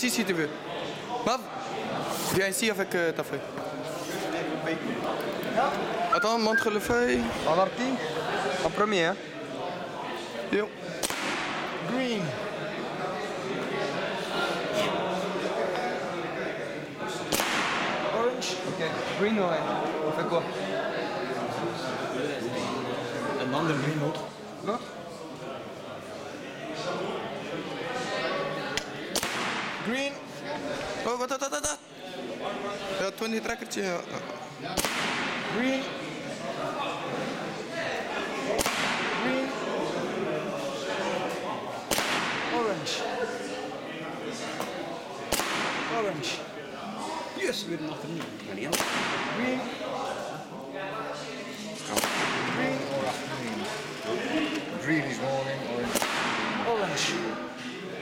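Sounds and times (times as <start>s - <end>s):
paintball marker shot crack: 17.3s - 18.0s, 34.8s - 35.4s, 41.9s - 42.5s, 45.3s - 46.0s, 52.0s - 52.5s, 55.9s - 56.6s.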